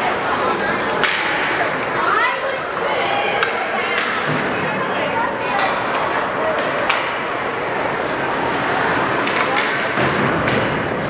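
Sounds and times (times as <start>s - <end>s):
spectators chattering: 0.0s - 11.0s
hockey stick hitting puck: 0.9s - 1.6s, 3.4s - 4.6s, 5.6s - 7.3s, 9.1s - 11.0s.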